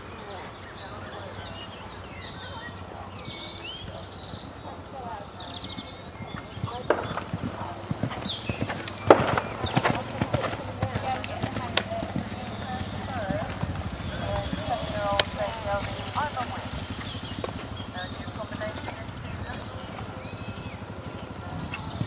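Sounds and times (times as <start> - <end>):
hooves thudding on sand: 0.0 - 22.0.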